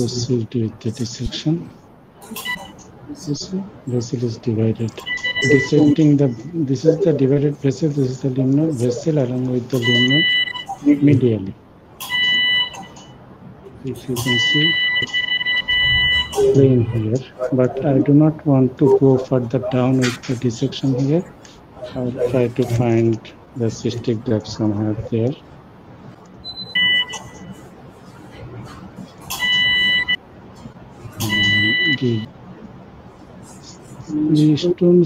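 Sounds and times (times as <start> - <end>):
high electronic beep: 2.4 - 2.8, 5.0 - 6.4, 9.8 - 10.8, 14.2 - 16.7, 26.4 - 27.6, 31.2 - 32.3.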